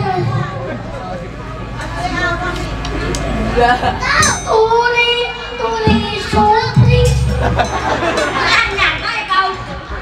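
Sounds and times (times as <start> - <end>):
child talking through microphone: 0.0 - 1.2, 1.8 - 3.1, 3.7 - 7.6, 8.2 - 10.0.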